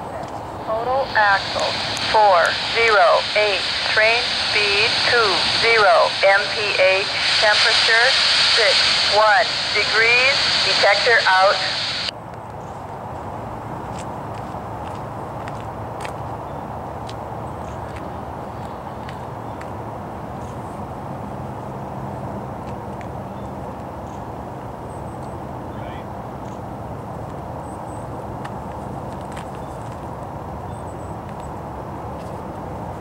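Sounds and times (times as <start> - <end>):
distant diesel locomotives rumbling: 0.0 - 33.0.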